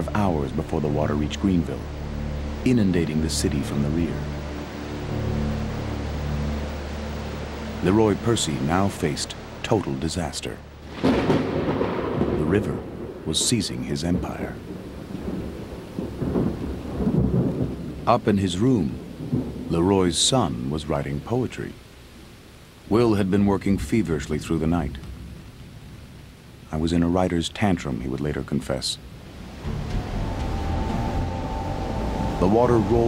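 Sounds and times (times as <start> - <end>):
rushing floodwater rumble: 0.0 - 33.0
high sustained note: 29.6 - 33.0.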